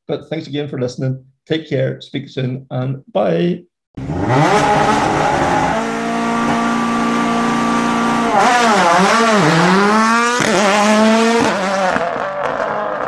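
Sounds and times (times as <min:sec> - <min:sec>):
rally car engine revving: 0:04.0 - 0:13.0.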